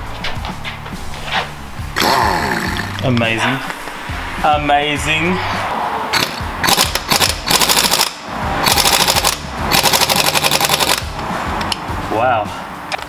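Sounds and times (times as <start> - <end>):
air impact wrench rattling: 6.1 - 11.7.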